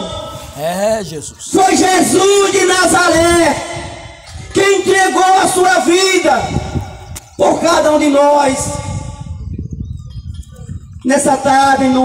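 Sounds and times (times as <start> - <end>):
wind buffeting microphone: 1.2 - 12.0.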